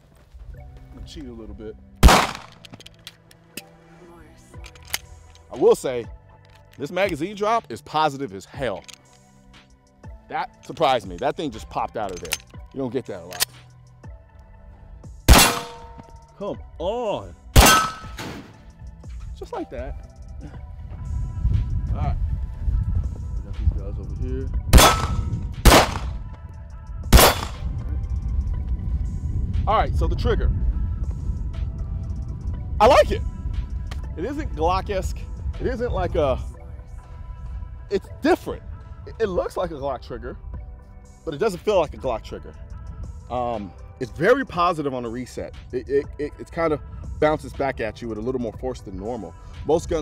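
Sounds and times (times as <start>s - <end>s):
background music: 0.0s - 50.0s
pistol shots with echo: 2.0s - 2.7s, 15.3s - 16.0s, 17.6s - 18.5s, 24.8s - 26.2s, 27.1s - 27.6s
gun handling clicks: 2.0s - 3.7s, 4.5s - 5.5s, 6.3s - 7.2s, 8.7s - 9.3s, 10.6s - 11.3s, 12.0s - 13.7s, 25.7s - 26.2s, 27.2s - 27.6s, 33.9s - 34.1s
pistol magazine release click: 2.0s - 3.7s, 4.6s - 5.5s, 12.1s - 12.6s, 13.3s - 13.7s.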